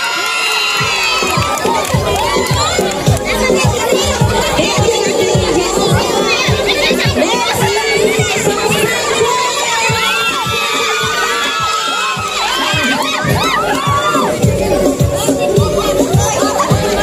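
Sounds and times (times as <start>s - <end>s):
crowd of women cheering: 0.0s - 15.2s
music with bass beat: 0.7s - 17.0s.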